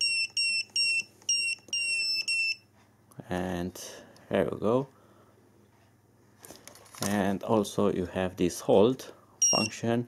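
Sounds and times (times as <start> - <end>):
short high-pitched beeps: 9.4 - 9.8.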